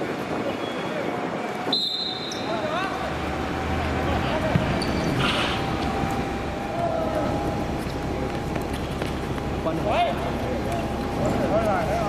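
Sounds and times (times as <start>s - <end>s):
steady background hum: 0.0s - 12.0s
football kicked and bouncing: 4.5s - 4.9s.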